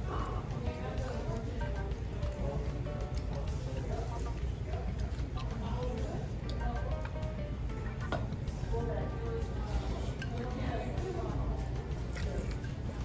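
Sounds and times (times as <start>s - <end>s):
background music: 0.0s - 13.0s
steady low hum: 0.0s - 13.0s.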